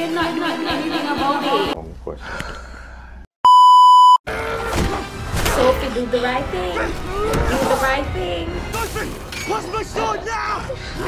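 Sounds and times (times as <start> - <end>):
censor bleep: 3.4 - 4.2
people talking: 5.6 - 10.7.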